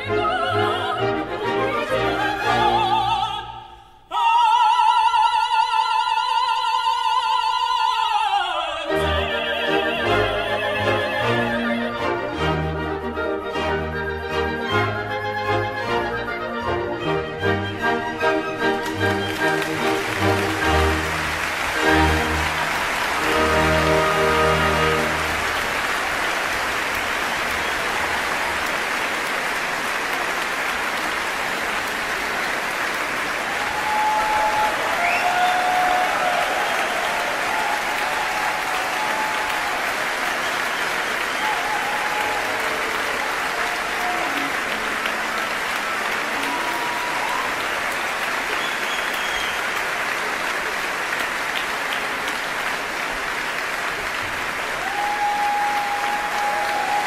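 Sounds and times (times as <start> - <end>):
audience applauding: 9.8 - 57.0.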